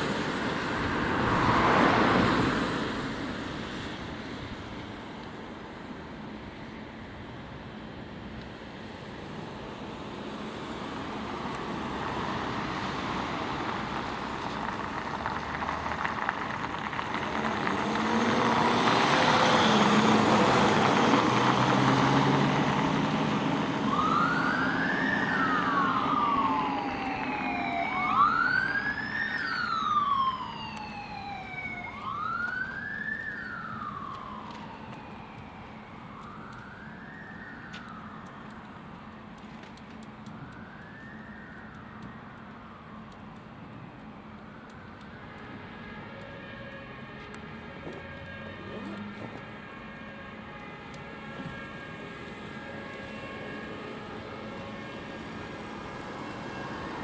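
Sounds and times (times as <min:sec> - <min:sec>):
van engine and tyres driving past: 0:10.4 - 0:34.5
siren wailing: 0:17.8 - 0:38.6, 0:40.3 - 0:43.4, 0:44.4 - 0:57.0.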